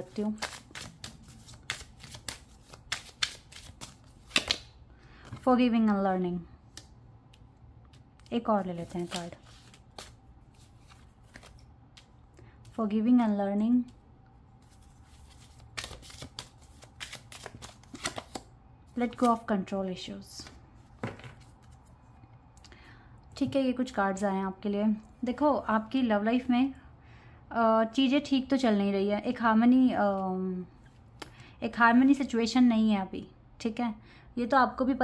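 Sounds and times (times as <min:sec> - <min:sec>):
cards being shuffled: 0:00.0 - 0:05.4, 0:06.7 - 0:12.1, 0:14.6 - 0:19.4.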